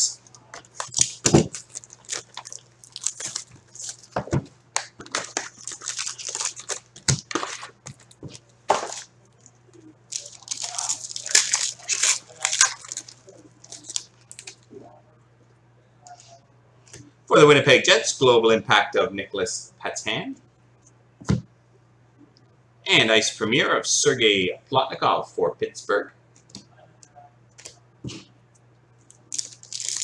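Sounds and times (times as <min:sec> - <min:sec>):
wrappers crinkling: 0:00.6 - 0:09.5, 0:10.1 - 0:14.7, 0:29.3 - 0:30.0
foil packs tearing open: 0:00.8 - 0:04.2, 0:04.8 - 0:08.1, 0:10.1 - 0:14.5, 0:29.3 - 0:30.0.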